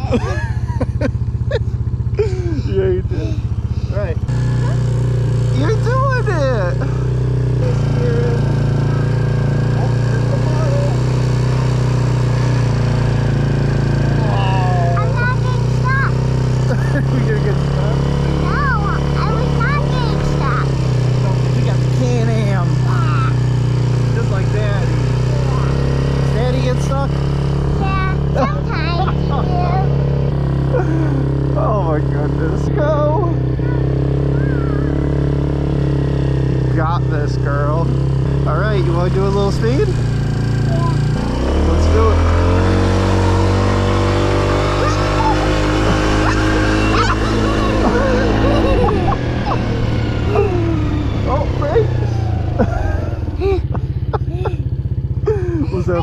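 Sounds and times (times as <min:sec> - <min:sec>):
atv engine running: 0:00.0 - 0:56.0
person calling out: 0:32.6 - 0:35.0.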